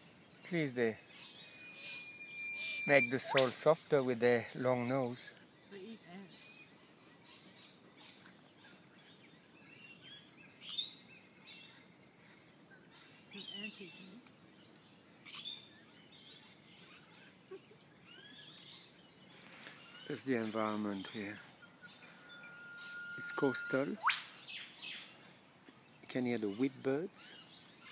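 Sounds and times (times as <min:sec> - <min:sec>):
birds calling faintly: 0:00.0 - 0:27.9
whipbird sharp sweeping calls: 0:02.6 - 0:03.7, 0:22.9 - 0:24.6.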